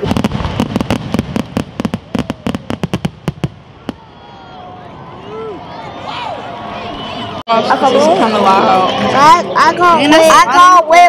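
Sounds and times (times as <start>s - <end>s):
fireworks crackling: 0.0s - 4.2s.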